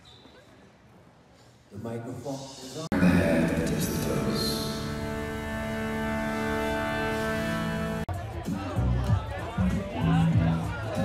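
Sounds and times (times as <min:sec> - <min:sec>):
music of long held notes: 0:02.9 - 0:08.1
steady drone: 0:02.9 - 0:08.1.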